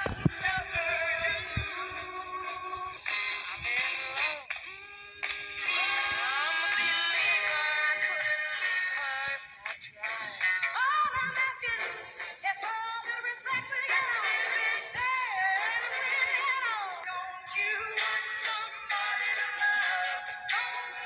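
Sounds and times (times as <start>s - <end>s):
person singing: 0.0s - 21.0s.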